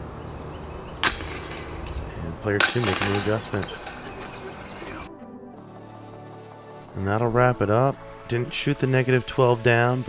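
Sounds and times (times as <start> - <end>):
disc hitting basket chains: 1.0 - 5.1.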